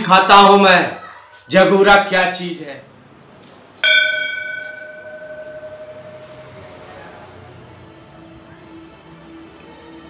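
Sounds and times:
brass temple bell ringing: 0:03.8 - 0:07.4.

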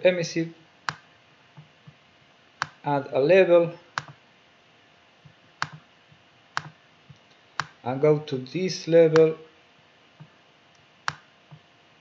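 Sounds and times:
computer mouse clicking: 0:04.0 - 0:04.2, 0:05.6 - 0:05.8, 0:06.6 - 0:07.8, 0:11.1 - 0:11.6.

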